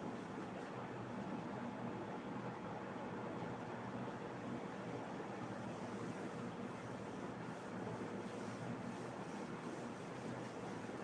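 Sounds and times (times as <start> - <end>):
faint room noise hiss: 0.0 - 11.0.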